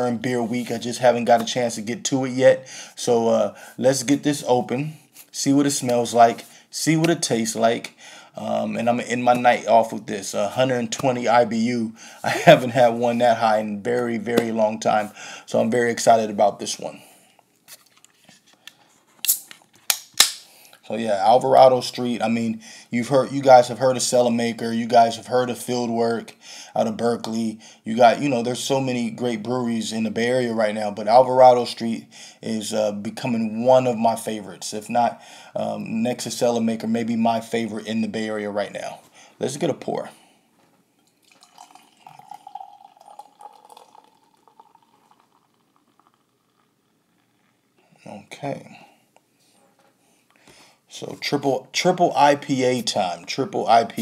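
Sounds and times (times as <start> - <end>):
pull tab crack: 19.2 - 20.5
beer pouring into a glass: 41.0 - 47.4.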